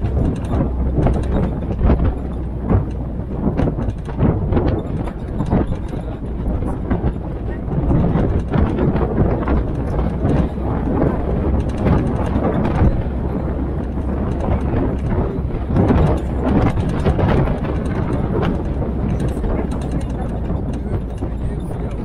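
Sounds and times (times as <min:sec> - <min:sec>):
jeep engine rumble: 0:00.0 - 0:22.0
rough road and tyre noise: 0:00.0 - 0:22.0.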